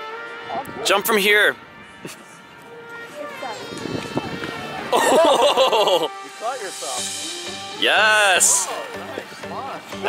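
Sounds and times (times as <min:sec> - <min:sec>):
indistinct voices outdoors: 0:00.0 - 0:10.0.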